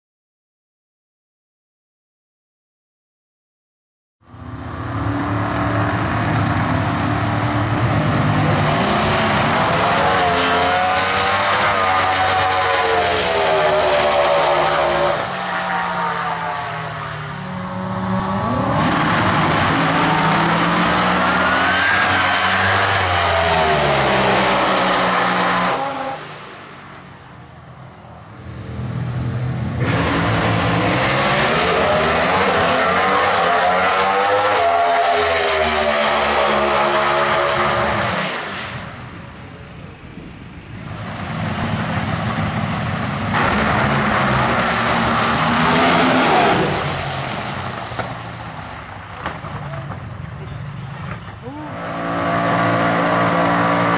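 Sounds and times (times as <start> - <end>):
drag racing cars at full throttle: 4.2 - 53.9.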